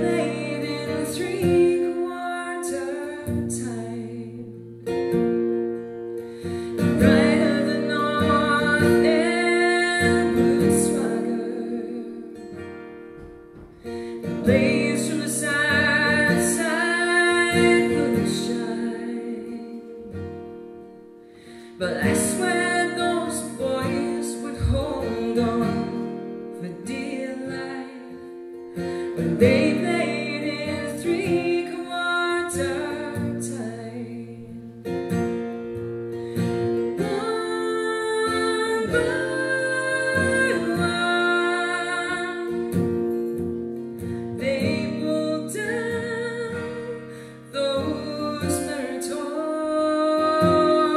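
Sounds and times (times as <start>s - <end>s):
acoustic guitar and mandolin folk music: 0.0s - 50.9s
woman singing: 0.0s - 50.9s.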